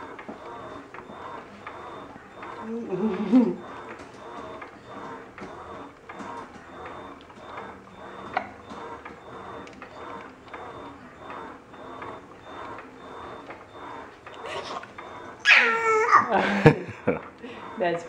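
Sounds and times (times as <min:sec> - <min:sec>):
baby making soft rhythmic sounds: 0:15.5 - 0:16.3
baby squealing laugh: 0:15.5 - 0:16.3.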